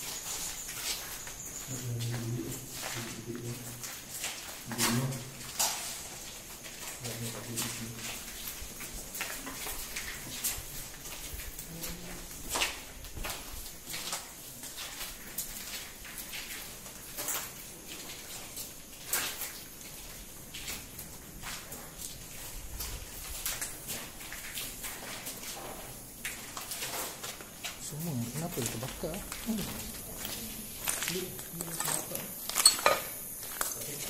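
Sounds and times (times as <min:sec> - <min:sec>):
footsteps on gritty concrete: 0:00.0 - 0:34.0.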